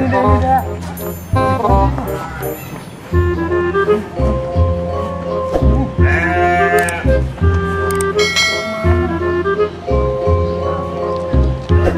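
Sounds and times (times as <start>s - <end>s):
background music: 0.0s - 11.9s
goat bleating: 6.0s - 7.1s.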